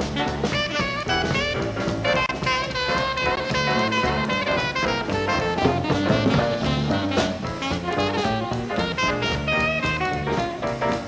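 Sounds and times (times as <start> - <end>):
swing jazz band playing: 0.0 - 11.0.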